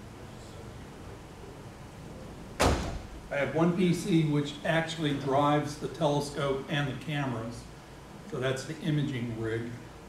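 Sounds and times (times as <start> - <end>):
sudden loud thump: 2.6 - 3.2.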